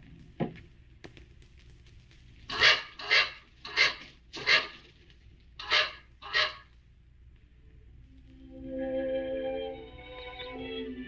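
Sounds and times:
dog barking: 2.5 - 4.8, 5.6 - 6.7.

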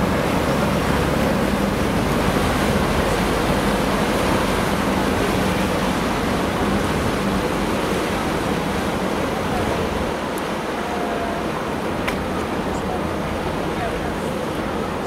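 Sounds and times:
ferry engine droning: 0.0 - 15.0
propeller wash churning water: 0.0 - 15.0.

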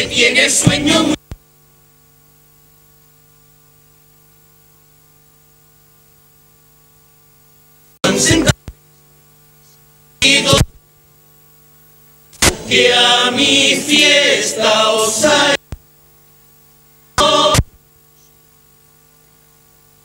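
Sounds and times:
group singing: 0.0 - 1.2, 10.2 - 10.7, 12.4 - 15.6, 17.2 - 17.7
electrical mains hum: 0.0 - 20.0.

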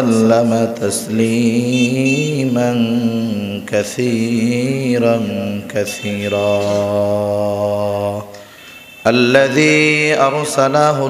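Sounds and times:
man chanting: 0.0 - 8.3, 9.0 - 11.0.

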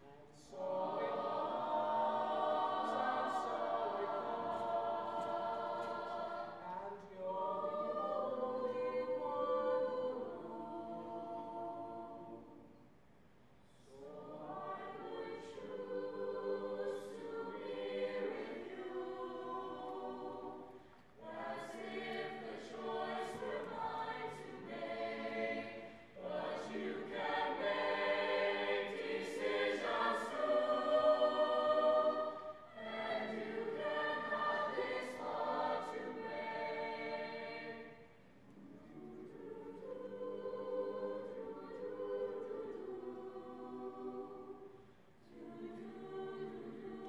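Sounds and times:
mixed choir singing in harmony: 0.0 - 13.0, 13.7 - 47.0.

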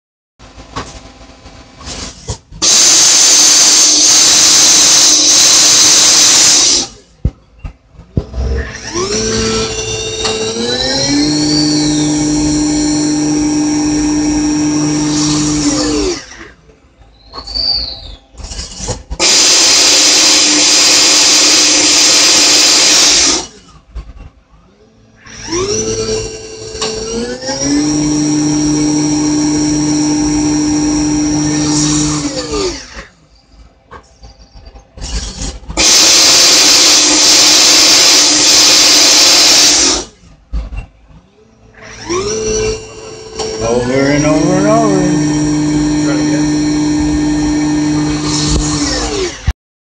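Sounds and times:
loud hiss: 2.6 - 7.0
lathe spindle whining: 8.2 - 16.5, 25.2 - 33.0, 41.6 - 49.5.

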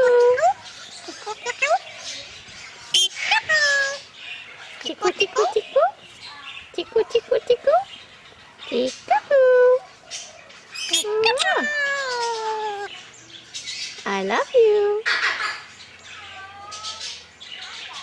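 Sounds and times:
parrot squawking: 1.0 - 1.9, 2.9 - 4.0, 10.8 - 12.9.

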